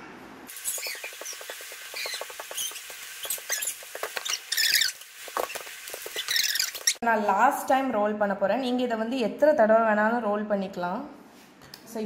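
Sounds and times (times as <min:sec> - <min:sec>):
baking paper crackling: 0:00.5 - 0:07.0
high chirping squeaks: 0:00.5 - 0:07.0.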